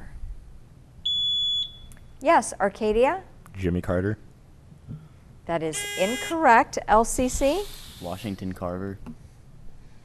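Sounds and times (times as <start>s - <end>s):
high-pitched buzzer beep: 1.1s - 1.9s, 5.8s - 6.4s.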